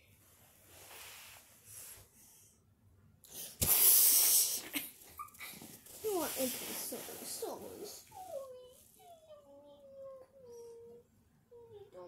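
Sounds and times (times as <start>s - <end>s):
small pet whining: 7.9s - 11.0s.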